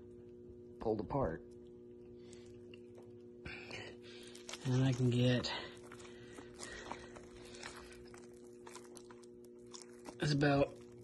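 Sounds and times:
low electrical hum: 0:00.0 - 0:11.0
wet squelches of hands in flesh: 0:03.8 - 0:11.0.

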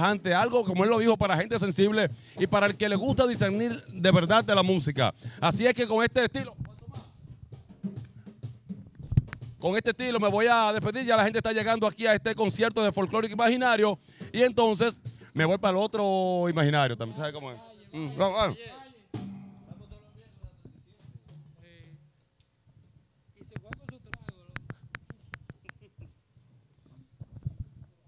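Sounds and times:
faint low drum thumps: 0:00.0 - 0:15.8, 0:18.2 - 0:25.8
low instrument note: 0:19.2 - 0:20.2.

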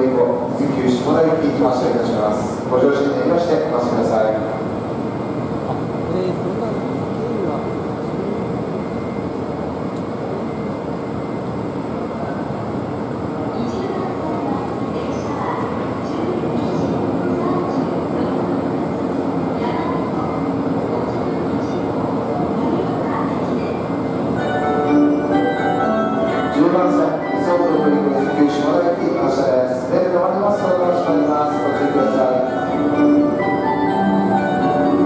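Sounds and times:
electric train humming: 0:00.0 - 0:35.0.

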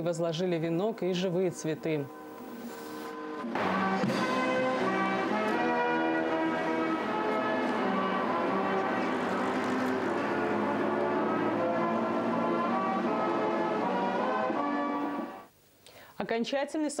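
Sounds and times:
brass band playing solemn piece: 0:02.2 - 0:15.5.

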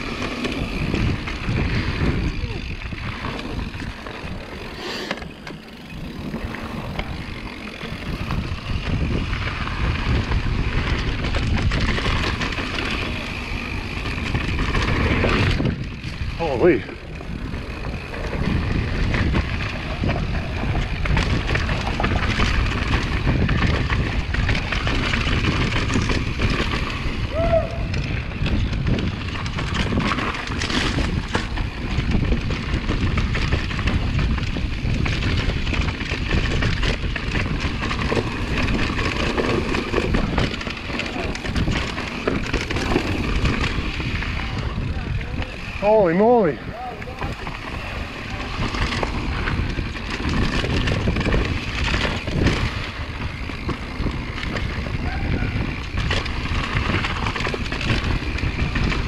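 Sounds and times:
wind buffeting microphone: 0:00.0 - 0:04.8, 0:05.5 - 0:59.0
bike rattling and clattering: 0:00.0 - 0:59.0
bike tyres over dirt and rocks: 0:00.0 - 0:59.0.

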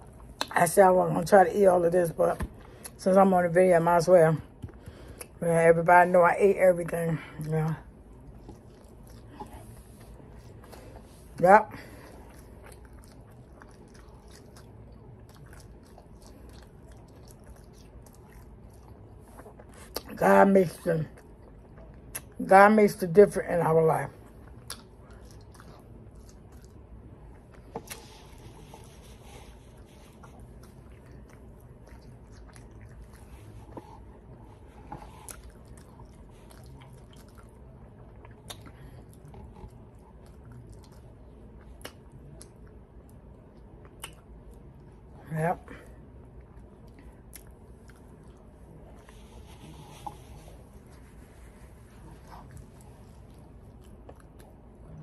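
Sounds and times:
person chewing: 0:07.9 - 0:20.1, 0:24.2 - 0:44.9, 0:46.2 - 0:55.0
wet mouth clicks and smacks: 0:41.6 - 0:42.6, 0:43.6 - 0:44.3.

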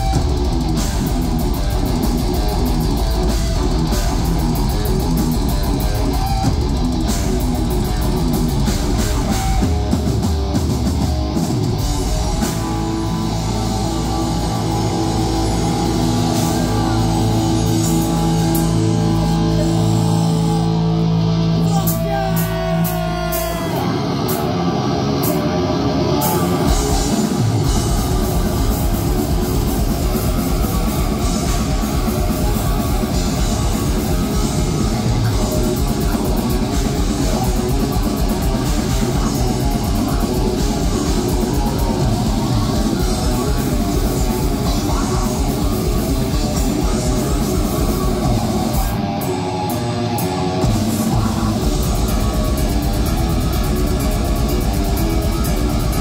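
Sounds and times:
fast drum and cymbal hits: 0:00.0 - 0:20.8, 0:26.2 - 0:56.0
distorted electric guitars: 0:00.0 - 0:56.0.

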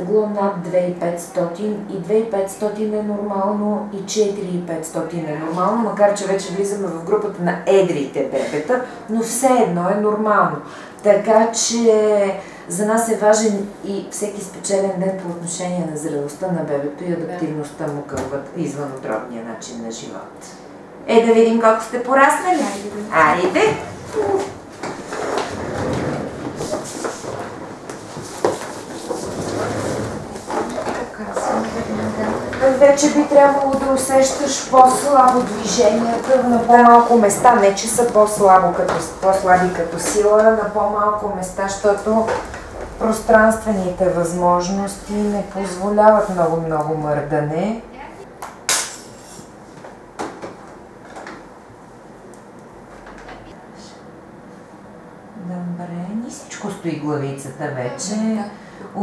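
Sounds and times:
low background noise: 0:00.0 - 0:59.0
shuffling and handling noises: 0:22.4 - 0:40.5
indistinct voices: 0:29.0 - 0:48.2.

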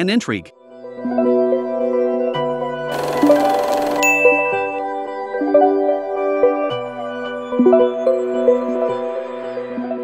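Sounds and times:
bright ringing chime: 0:04.0 - 0:04.8.

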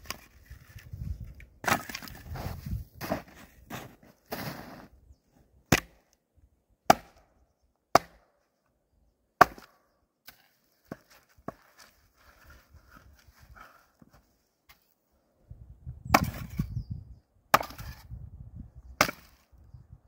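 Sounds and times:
axe splitting frozen wood: 0:01.6 - 0:02.4, 0:05.7 - 0:06.0, 0:06.9 - 0:07.2, 0:07.9 - 0:08.3, 0:09.4 - 0:11.1, 0:17.5 - 0:18.0, 0:19.0 - 0:19.4.

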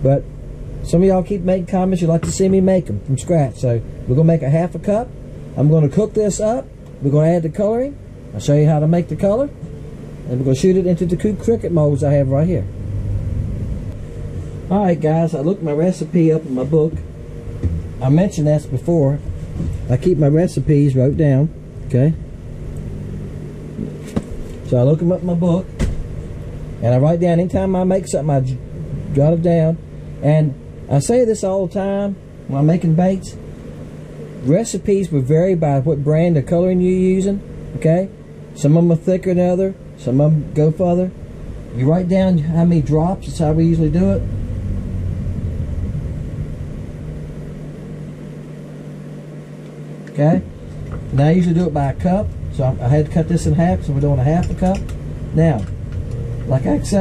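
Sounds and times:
low mechanical hum: 0:00.0 - 0:57.0
low rumble: 0:08.0 - 0:34.2, 0:41.1 - 0:48.5, 0:50.4 - 0:57.0.

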